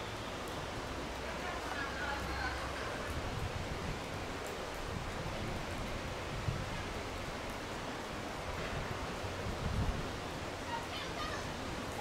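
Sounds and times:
outdoor background hiss: 0.0 - 12.0
wind rumbling on microphone: 2.2 - 10.8.

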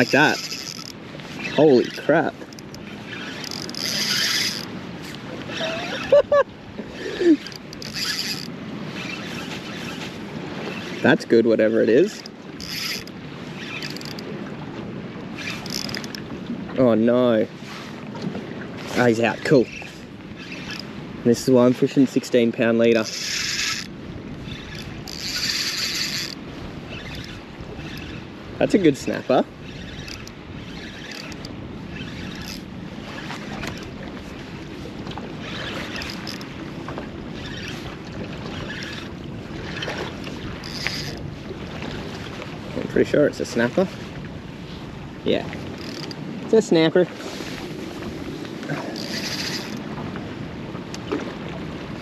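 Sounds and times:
fishing reel whirring: 0.0 - 6.4, 7.0 - 14.3, 15.2 - 16.3, 18.8 - 34.6, 35.3 - 41.3, 45.6 - 46.2, 48.6 - 49.9
water noise: 0.0 - 52.0
wind: 0.0 - 52.0.

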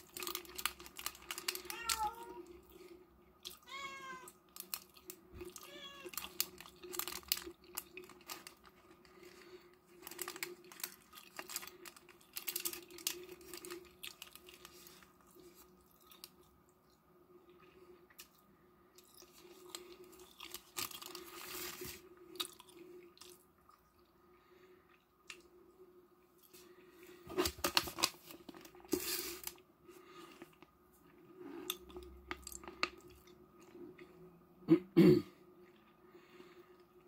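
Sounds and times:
plastic wrapping crinkling: 0.0 - 2.4, 3.9 - 16.3, 20.1 - 22.0, 27.3 - 29.6
faint steady hum: 0.0 - 37.0
person chewing: 4.6 - 16.5, 19.0 - 24.1.

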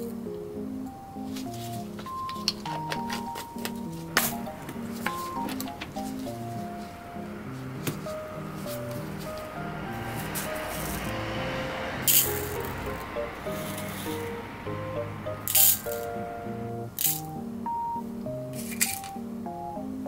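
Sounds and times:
soft background music: 0.0 - 20.0
plastic beads rattling in boxes: 12.0 - 12.8, 15.5 - 16.1, 17.0 - 17.3, 18.6 - 19.2.

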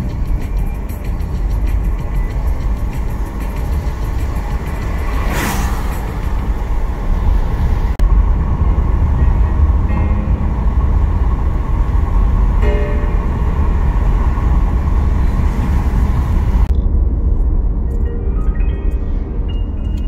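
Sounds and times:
tyres rumbling on wet road: 0.0 - 17.4
car swishing past: 2.6 - 8.0.

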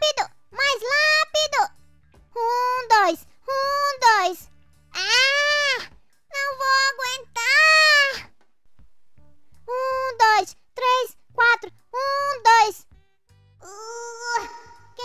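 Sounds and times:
background music: 0.0 - 15.0
high-pitched cartoon voice cries: 5.0 - 5.9, 13.6 - 15.0.

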